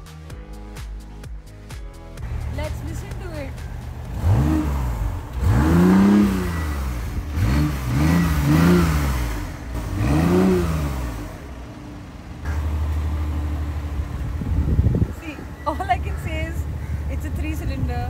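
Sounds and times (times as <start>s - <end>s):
car engine revving and idling: 2.2s - 18.0s.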